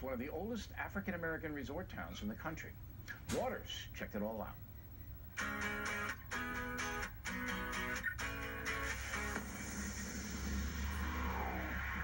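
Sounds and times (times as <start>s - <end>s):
guitar music through tv speaker: 5.4s - 12.0s.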